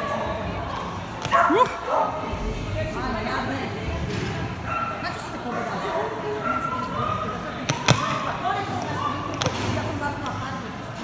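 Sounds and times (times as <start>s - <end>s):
voices in echoing hall: 0.0s - 11.0s.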